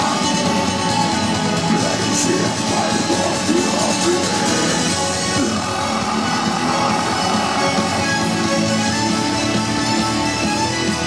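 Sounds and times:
electric guitars: 0:00.0 - 0:11.0
metal band playing live: 0:00.0 - 0:11.0.

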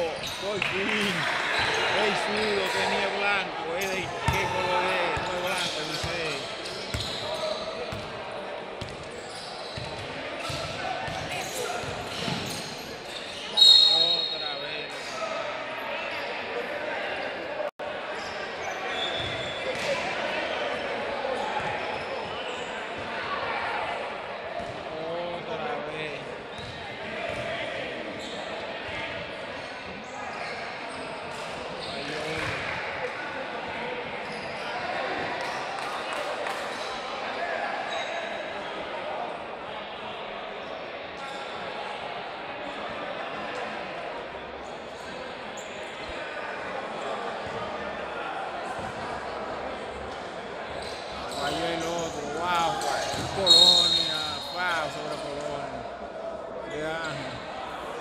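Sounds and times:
spectators' voices and shouts: 0:00.0 - 0:58.0
basketball bouncing on court: 0:08.8 - 0:09.0, 0:09.8 - 0:12.6, 0:32.3 - 0:32.6
referee's whistle: 0:13.2 - 0:14.7, 0:53.2 - 0:54.8.

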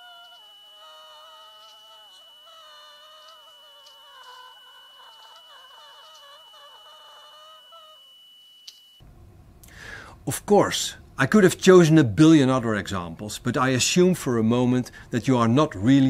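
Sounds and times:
faint steady high tone: 0:00.0 - 0:09.1.

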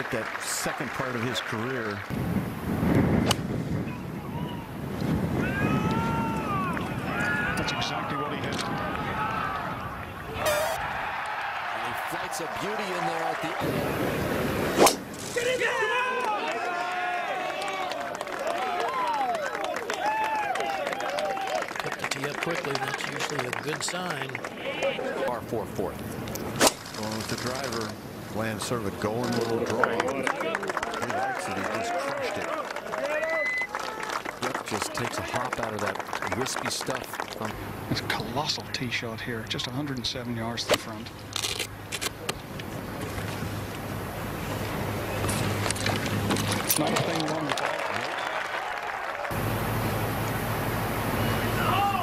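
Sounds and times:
wind buffeting microphone: 0:02.1 - 0:11.0
spectators calling out: 0:05.5 - 0:13.7.

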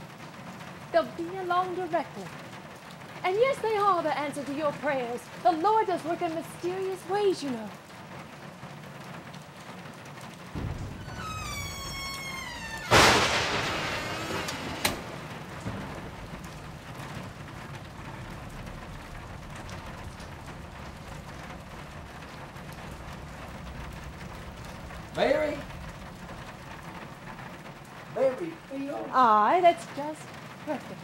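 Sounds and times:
steady rain: 0:00.0 - 0:31.0
thunder rumbling: 0:10.4 - 0:31.0
sharp thunder crack: 0:10.5 - 0:27.8
high-pitched falling cry: 0:10.9 - 0:14.5.

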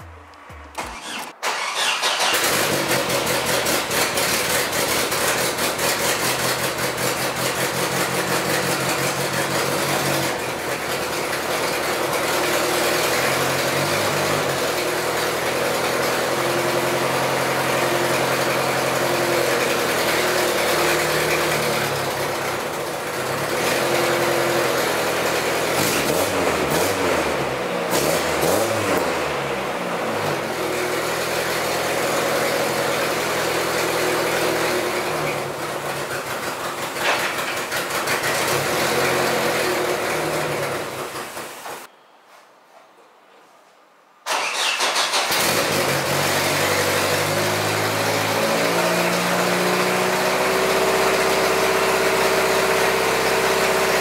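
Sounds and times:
car engine revving: 0:00.0 - 0:36.4, 0:37.8 - 0:41.1, 0:44.3 - 0:54.0
loud exhaust blowing: 0:45.4 - 0:54.0.

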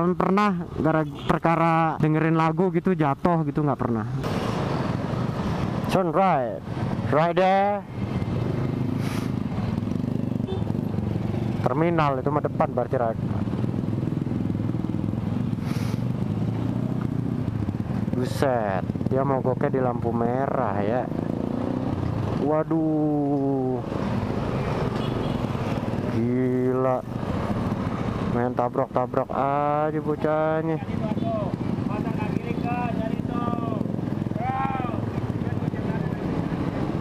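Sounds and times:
wind and road noise: 0:00.0 - 0:37.0
motorcycle engine running: 0:07.9 - 0:22.4, 0:29.4 - 0:37.0
brief hiss: 0:15.6 - 0:16.0.

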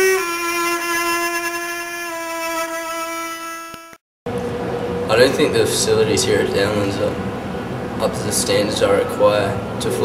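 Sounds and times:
slow violin melody: 0:00.0 - 0:04.0.

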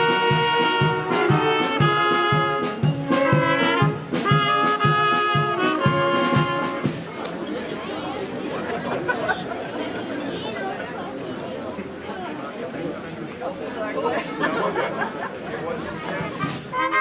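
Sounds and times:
brass band playing a march: 0:00.0 - 0:07.2, 0:16.0 - 0:17.0
murmur of many people talking: 0:00.0 - 0:17.0.

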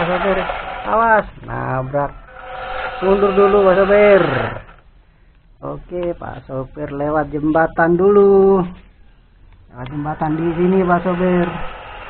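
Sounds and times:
person speaking: 0:00.0 - 0:04.8, 0:05.6 - 0:09.0, 0:09.6 - 0:11.8.

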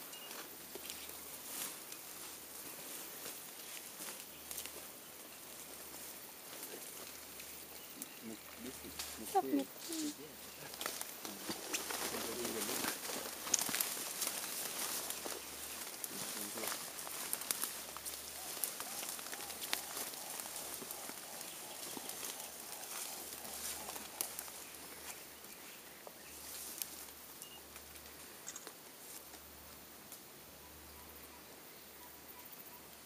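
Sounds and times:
leafy stems rustling and snapping: 0:00.3 - 0:04.9, 0:05.5 - 0:29.4
quiet murmured voices: 0:01.1 - 0:28.4.

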